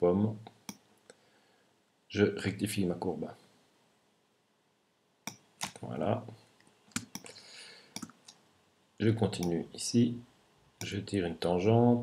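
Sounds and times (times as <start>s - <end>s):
computer mouse clicking: 6.9s - 7.3s, 7.9s - 8.4s.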